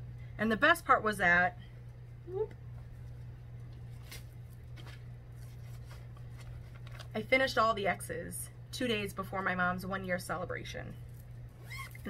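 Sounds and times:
low electrical hum: 0:00.0 - 0:12.0
cloth rustling: 0:03.0 - 0:07.1.

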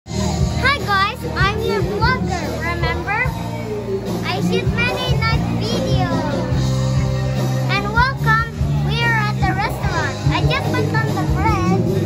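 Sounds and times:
background music: 0:00.1 - 0:12.0
child talking: 0:00.6 - 0:03.4, 0:04.2 - 0:06.6, 0:07.7 - 0:12.0.

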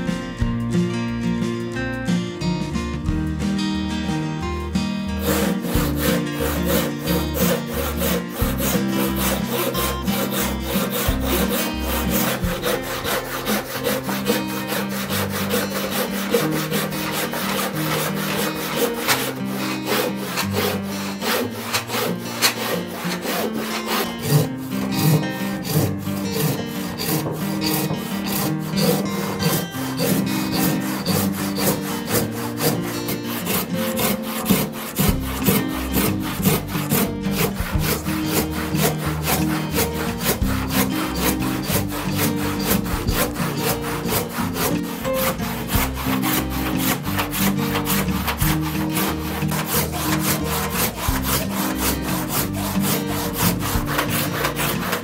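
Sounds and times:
handsaw rasping through wood: 0:05.1 - 0:55.0.

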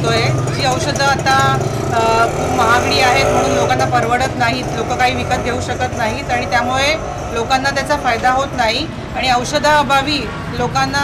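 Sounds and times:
street traffic: 0:00.0 - 0:11.0
vehicle engine running: 0:00.0 - 0:11.0
woman talking: 0:00.0 - 0:11.0.

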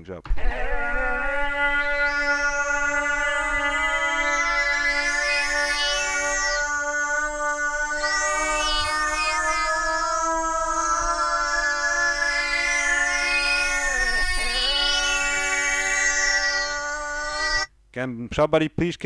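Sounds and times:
pitched electronic drone: 0:00.3 - 0:17.7.

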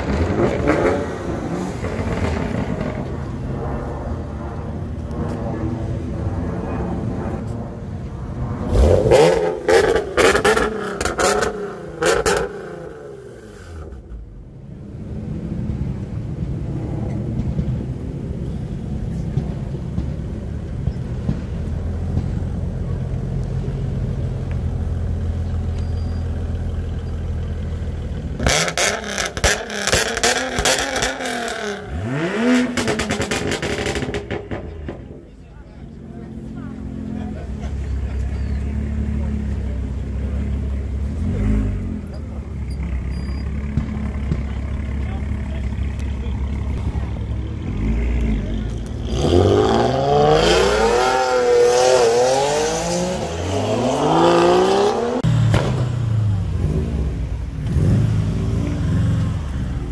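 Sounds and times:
car engine revving: 0:00.0 - 0:14.1, 0:26.4 - 0:59.9
car engine idling: 0:17.4 - 0:31.9, 0:32.8 - 0:49.0, 0:55.3 - 0:59.9.

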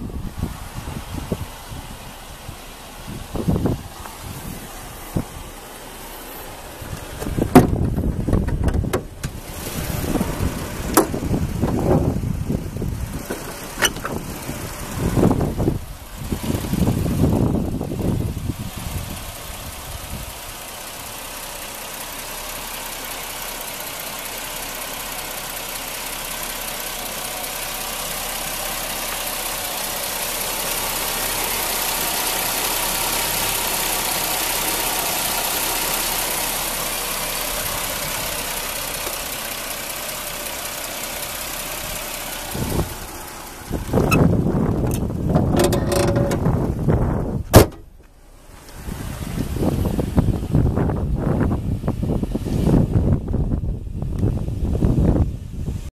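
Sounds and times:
wind buffeting microphone: 0:00.0 - 0:05.6, 0:06.7 - 0:20.5, 0:42.0 - 0:47.7, 0:48.8 - 0:55.9
car engine idling: 0:00.0 - 0:55.9.

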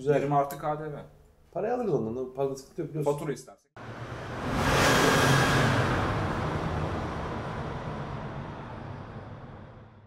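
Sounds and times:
low rumble: 0:03.8 - 0:10.0
rushing whoosh: 0:03.8 - 0:10.0.

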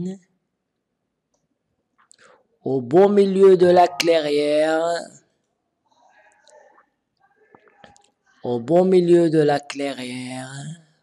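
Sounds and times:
person speaking: 0:02.7 - 0:05.3, 0:06.1 - 0:11.0.

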